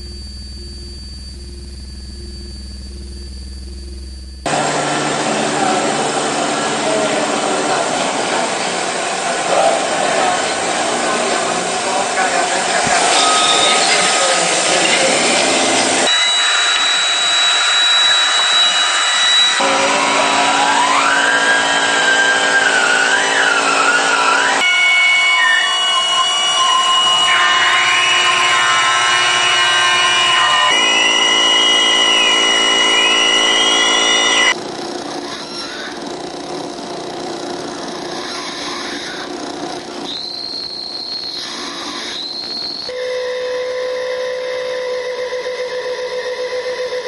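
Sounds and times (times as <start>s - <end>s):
harsh electronic noise: 0.0s - 43.0s
sliding whistling electronic pitches: 12.8s - 34.6s, 40.0s - 47.0s.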